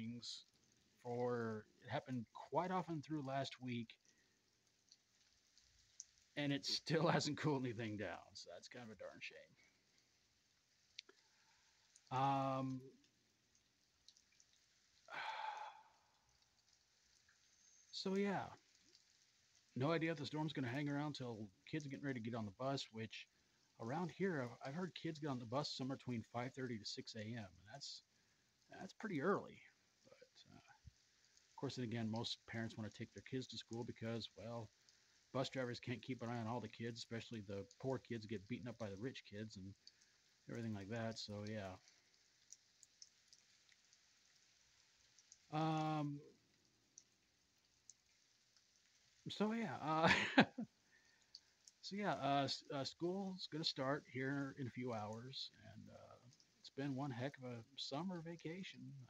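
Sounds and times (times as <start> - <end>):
rain dripping ticks: 0.0 - 59.0
person sighing: 15.1 - 15.8.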